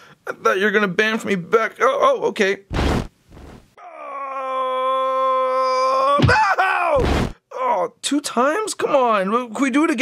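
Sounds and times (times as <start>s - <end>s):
short puff or thud: 2.7s - 3.8s, 7.0s - 7.4s
man's long steady cry: 3.8s - 7.0s.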